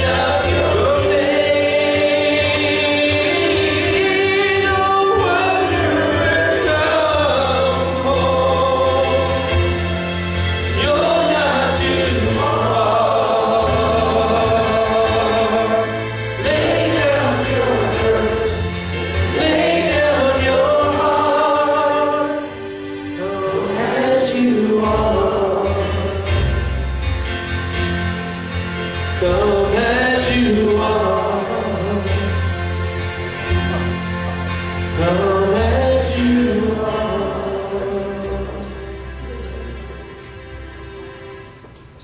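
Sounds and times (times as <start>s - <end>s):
people singing a slow worship song: 0.0s - 26.3s, 29.2s - 32.5s, 34.9s - 38.8s
instrumental backing: 0.0s - 42.0s.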